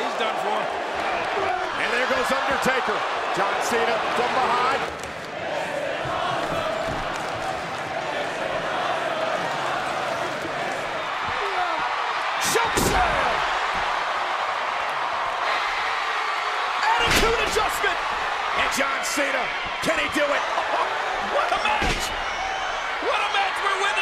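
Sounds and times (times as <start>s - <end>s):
arena crowd noise: 0.0s - 24.0s.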